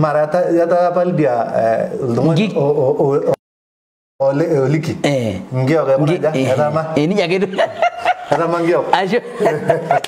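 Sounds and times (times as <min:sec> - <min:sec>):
men talking: 0:00.0 - 0:03.4, 0:04.2 - 0:10.0
men chuckling: 0:07.5 - 0:10.0.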